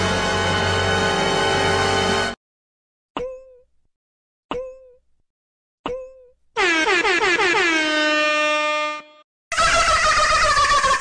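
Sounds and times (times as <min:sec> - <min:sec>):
noisy engine-like sound: 0:00.0 - 0:02.4.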